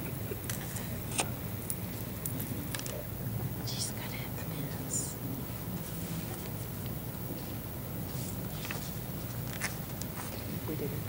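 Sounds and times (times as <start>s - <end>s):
whispered and murmured talk: 2.4s - 5.4s.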